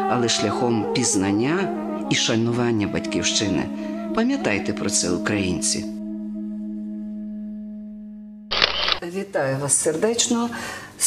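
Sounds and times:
held low musical tone: 0.0s - 8.5s.

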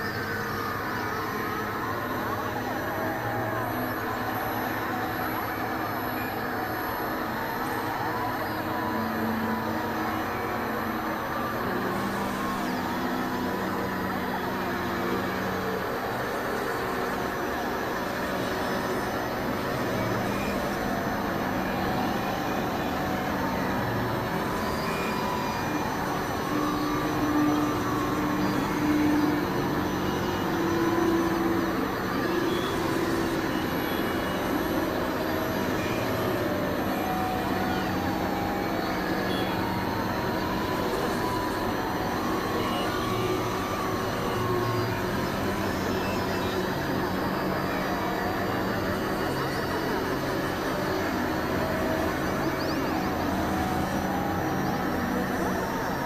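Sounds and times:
electronic noise drone music: 0.0s - 56.0s.

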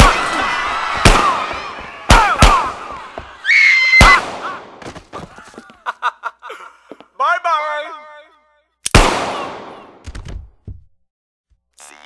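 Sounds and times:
gunshots with echo: 1.0s - 2.9s, 4.0s - 4.8s, 8.9s - 10.0s.

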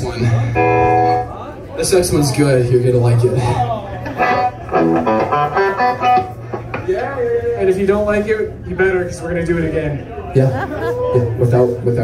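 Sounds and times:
electric guitar picking notes: 0.2s - 1.4s, 4.2s - 6.6s.

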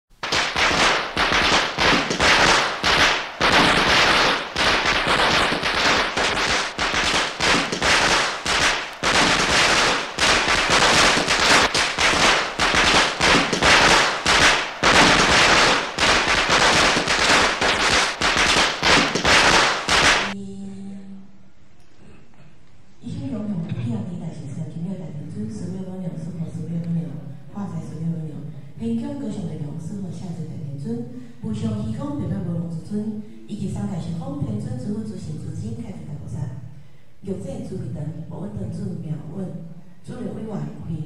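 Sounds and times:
firecrackers crackling: 0.1s - 20.4s.

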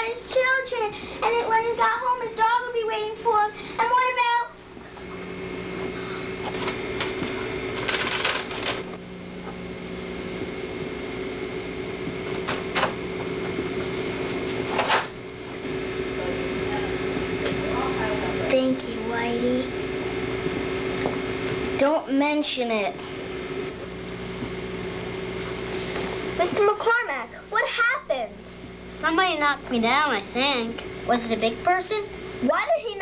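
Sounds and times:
electrical hum: 0.0s - 33.0s.

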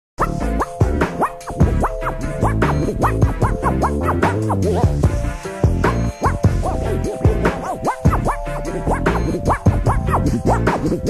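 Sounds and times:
hip-hop beat: 0.2s - 11.0s
turntable scratching: 0.2s - 11.0s.

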